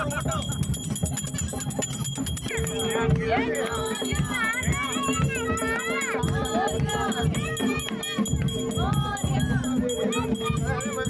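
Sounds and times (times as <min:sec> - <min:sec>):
crowd voices: 0:00.0 - 0:11.0
hand bell ringing rapidly: 0:00.0 - 0:11.0
music: 0:00.0 - 0:11.0.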